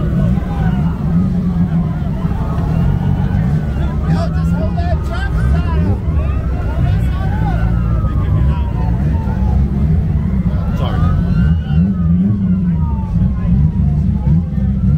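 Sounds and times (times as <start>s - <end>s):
car engines idling: 0.0s - 14.9s
crowd talking and calling out: 0.0s - 14.9s.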